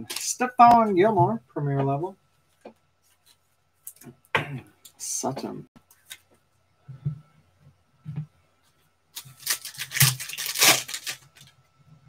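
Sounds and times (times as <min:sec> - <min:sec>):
foil wrapper tearing and crinkling: 0:00.0 - 0:00.4, 0:09.2 - 0:11.6.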